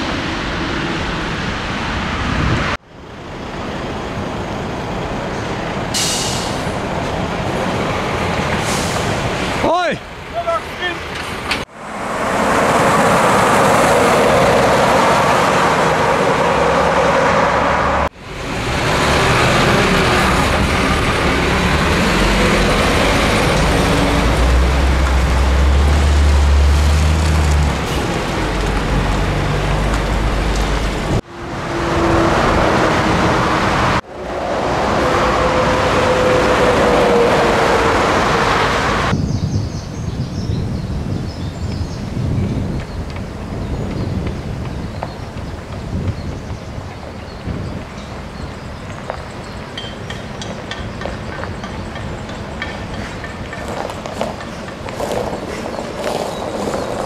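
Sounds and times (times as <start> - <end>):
diesel trucks driving past: 0.0 - 39.1, 46.8 - 57.0
tyre noise: 52.8 - 57.0.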